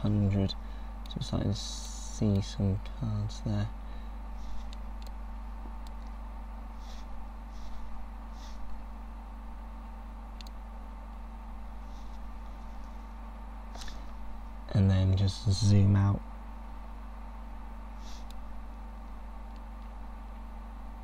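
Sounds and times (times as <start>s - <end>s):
low electrical hum: 0.0s - 21.0s
soft rustles: 6.7s - 8.7s.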